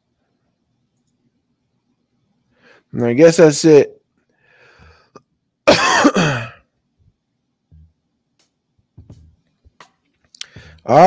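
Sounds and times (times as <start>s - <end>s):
man clearing his throat: 5.7s - 6.6s.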